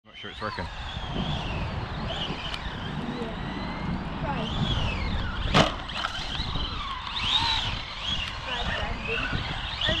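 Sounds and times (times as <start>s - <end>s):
wind on microphone: 0.1s - 10.0s
electric motor whining: 0.2s - 10.0s.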